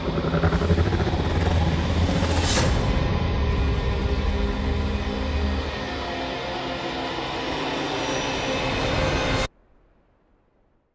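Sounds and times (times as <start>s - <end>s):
deep rumble: 0.0s - 7.4s.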